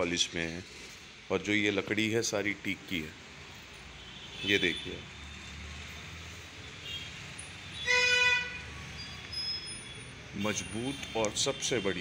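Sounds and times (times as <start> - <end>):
vehicle horn honk: 6.8 - 8.7.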